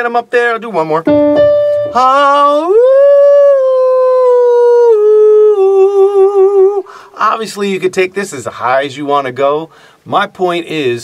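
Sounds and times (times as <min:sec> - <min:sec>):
man singing vocal exercise: 0:01.9 - 0:06.9.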